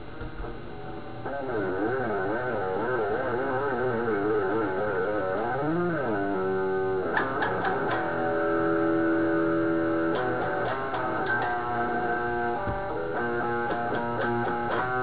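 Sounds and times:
electric guitar solo: 0.3 - 15.0.

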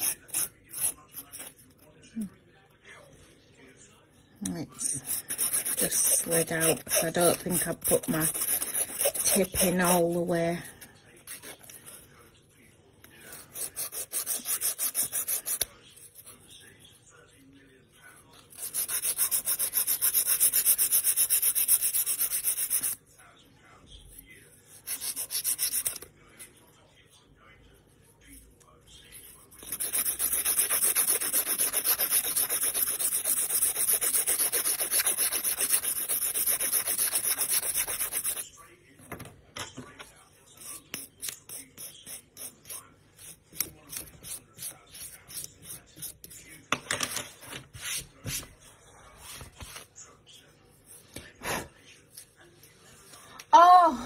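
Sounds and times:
nail file rasping on false nail: 0.0 - 1.5, 4.5 - 10.3, 13.3 - 15.7, 18.5 - 23.0, 24.8 - 26.0, 29.6 - 38.4.

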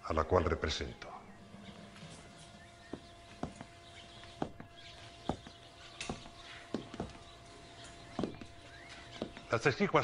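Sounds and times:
faint steady hum: 0.0 - 10.0
sharp knocks: 2.9 - 7.3, 8.0 - 9.5.

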